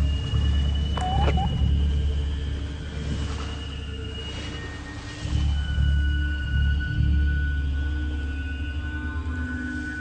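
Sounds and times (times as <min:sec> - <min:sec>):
wavering gliding pitch sweep: 0:00.7 - 0:01.8.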